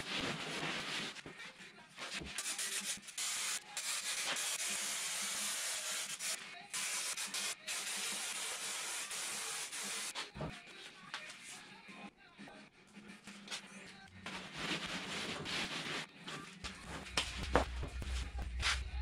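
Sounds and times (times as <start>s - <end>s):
aerosol spray can hissing: 2.4s - 10.1s.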